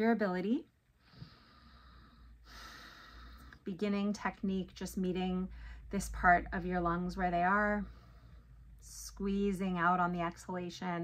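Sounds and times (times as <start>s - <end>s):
woman breathing through nose: 1.0s - 3.6s.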